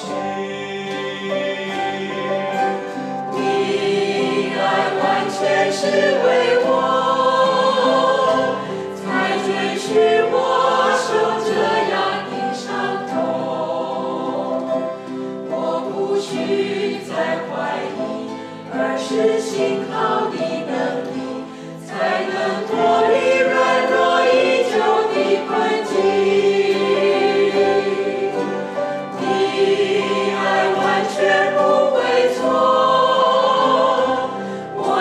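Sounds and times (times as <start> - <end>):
group singing worship song: 0.0 - 35.0
strummed acoustic guitars: 0.0 - 35.0.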